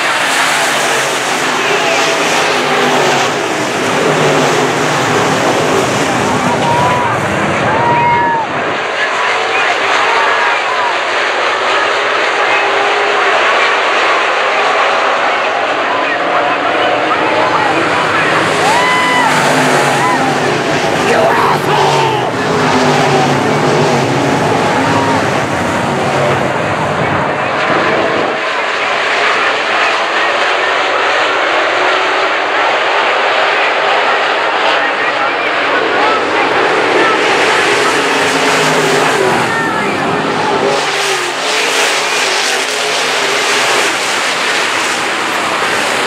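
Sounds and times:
crowd voices: 0:00.0 - 0:46.0
race car engines at speed: 0:00.0 - 0:46.0.

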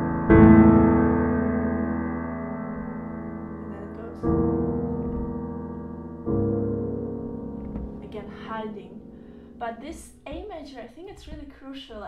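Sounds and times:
piano chord ringing: 0:00.0 - 0:10.6
woman's voice: 0:03.6 - 0:04.2, 0:08.0 - 0:09.0, 0:09.6 - 0:12.0.

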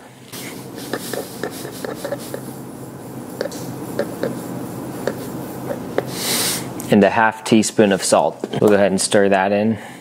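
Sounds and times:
soft rubbing noise: 0:00.4 - 0:06.8.

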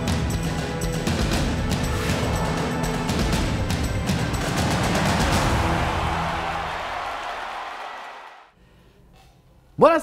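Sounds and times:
tv sports theme music: 0:00.0 - 0:08.5.

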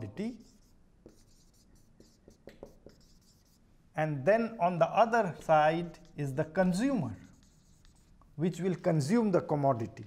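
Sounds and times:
marker writing on whiteboard: 0:00.0 - 0:03.6, 0:05.0 - 0:09.4.

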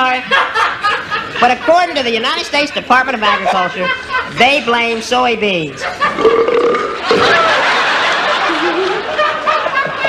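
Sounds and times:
studio audience laughing: 0:00.0 - 0:04.7, 0:05.8 - 0:06.3, 0:06.9 - 0:10.0.

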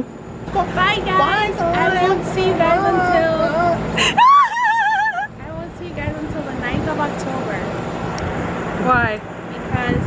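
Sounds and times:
steady background noise: 0:00.0 - 0:10.0
woman speaking: 0:00.6 - 0:03.8, 0:05.3 - 0:07.7, 0:08.8 - 0:10.0.

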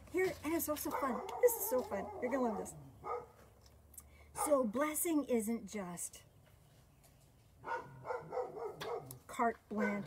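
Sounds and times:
dog barking: 0:00.9 - 0:03.4, 0:04.4 - 0:04.6, 0:07.6 - 0:09.2, 0:09.8 - 0:10.0.

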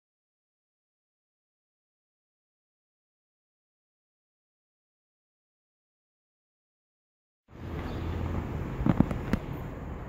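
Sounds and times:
low outdoor hum: 0:07.5 - 0:10.0.

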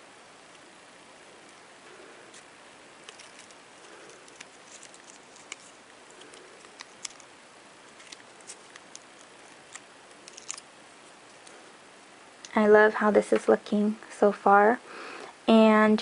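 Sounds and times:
wire and stems rustling: 0:01.4 - 0:11.8
small clicks and ticks: 0:03.0 - 0:07.3, 0:07.9 - 0:11.6.

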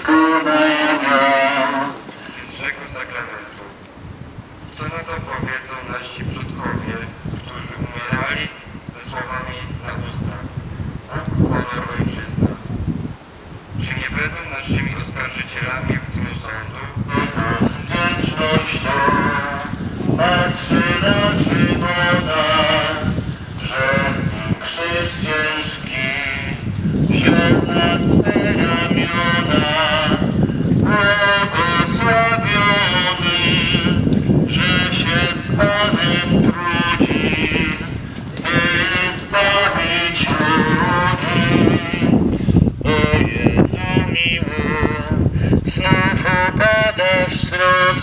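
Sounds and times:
voice through horn loudspeaker: 0:00.0 - 0:03.8, 0:04.7 - 0:12.7, 0:13.8 - 0:42.2, 0:42.8 - 0:48.0
wind buffeting microphone: 0:00.0 - 0:48.0.

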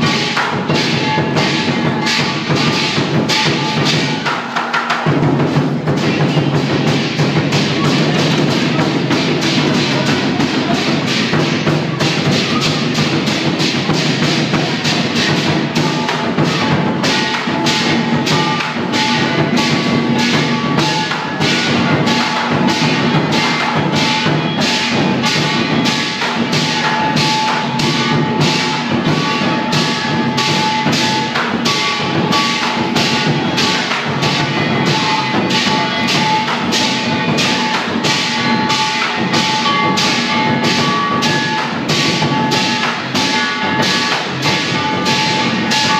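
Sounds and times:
cymbals clashing: 0:00.0 - 0:45.9
large drum beating: 0:00.0 - 0:45.9
gong ringing: 0:14.0 - 0:45.9.

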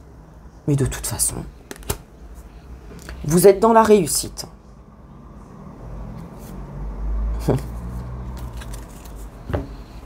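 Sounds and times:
cards clicking: 0:01.7 - 0:02.1, 0:08.3 - 0:09.3.

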